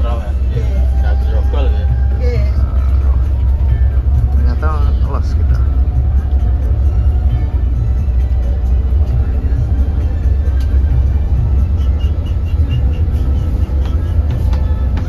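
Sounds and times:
background music: 0:00.0 - 0:15.0
bus engine rumble and road noise: 0:00.0 - 0:15.0.

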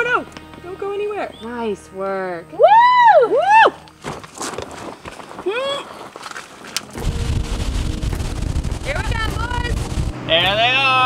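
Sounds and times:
wind buffeting microphone: 0:07.0 - 0:10.3.

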